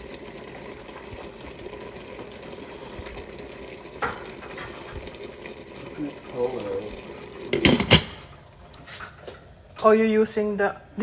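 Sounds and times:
pot of fish simmering: 0.0s - 9.8s.

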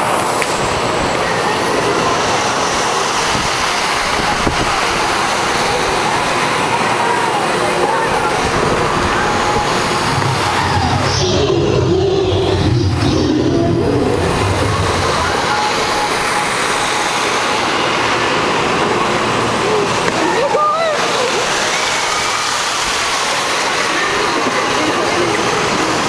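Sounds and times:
rushing wind and water: 0.0s - 26.0s.

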